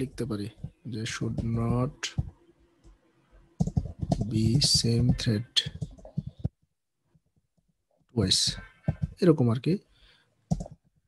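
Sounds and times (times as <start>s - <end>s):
computer keyboard keystrokes: 3.6s - 6.4s, 10.5s - 10.8s.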